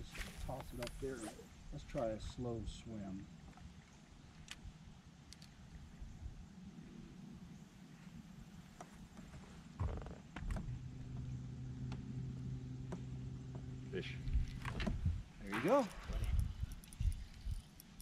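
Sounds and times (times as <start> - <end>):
faint clicks: 4.3 - 5.8, 15.7 - 18.0.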